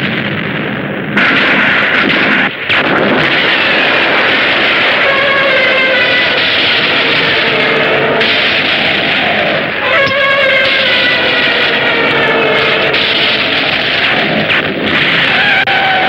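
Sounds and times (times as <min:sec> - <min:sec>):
explosions and destruction din: 0:00.0 - 0:16.0
wavering pitched wail: 0:04.7 - 0:16.0.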